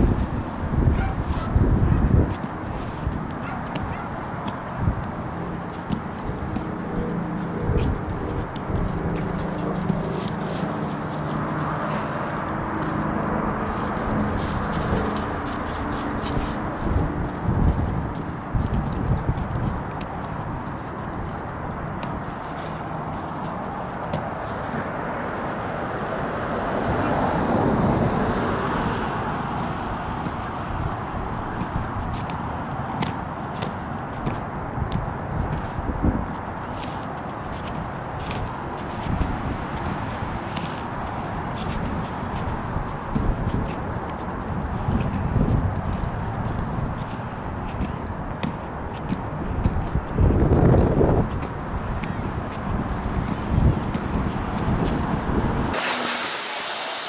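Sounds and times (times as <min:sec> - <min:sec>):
footsteps crunching on gravel: 0:00.0 - 0:25.7, 0:27.4 - 0:55.8
wind noise: 0:00.0 - 0:56.5
rush of noise: 0:50.4 - 0:57.0.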